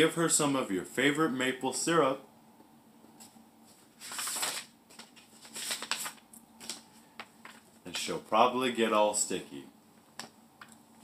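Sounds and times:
book pages rustling: 0:03.2 - 0:08.2.

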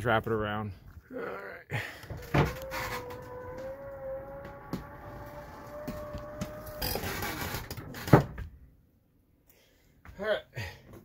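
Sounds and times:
motorized mechanism whining: 0:02.0 - 0:07.8.

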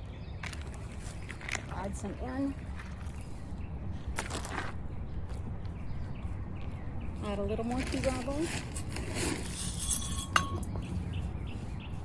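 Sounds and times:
gravel scooped with metal scoop: 0:07.8 - 0:10.4
sharp ringing clink: 0:09.8 - 0:10.8.

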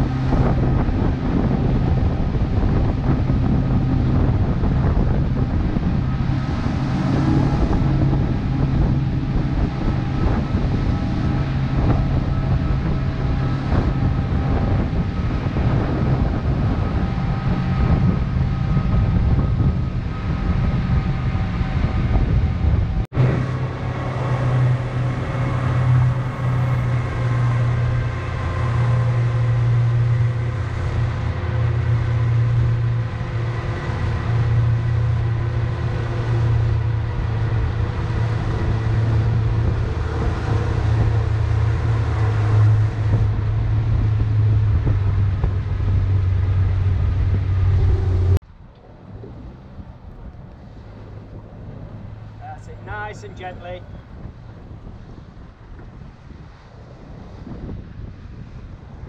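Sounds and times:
motorboat engine humming: 0:00.0 - 0:59.0
water rushing past hull: 0:00.0 - 0:59.0
wind on microphone: 0:00.0 - 0:59.0.

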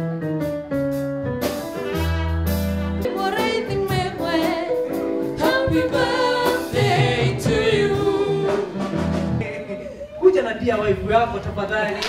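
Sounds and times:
electric keyboard chords: 0:00.0 - 0:09.4
trumpet melody: 0:01.4 - 0:04.8.

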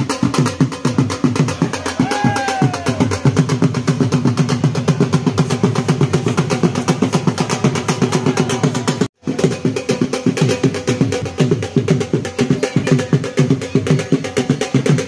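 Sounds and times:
drums beaten fast: 0:00.0 - 0:15.0.

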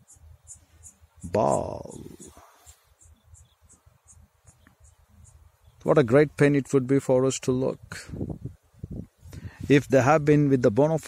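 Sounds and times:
insect chirps: 0:00.0 - 0:05.8.

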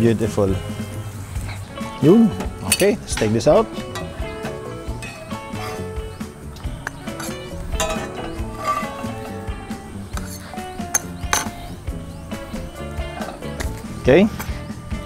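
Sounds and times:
background music: 0:00.0 - 0:15.0
metal utensils tapping pan: 0:02.4 - 0:05.9, 0:06.6 - 0:11.6.

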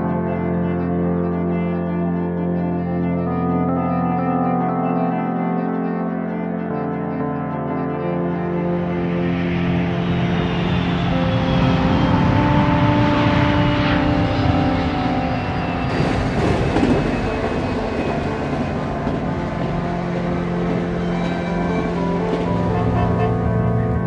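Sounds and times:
sustained musical drone: 0:00.0 - 0:24.0
moving train running: 0:08.6 - 0:24.0.

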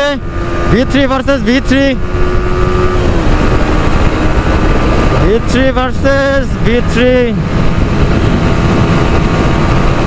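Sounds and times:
motorcycle engine running: 0:00.0 - 0:10.0
wind rumble on microphone: 0:00.0 - 0:10.0.

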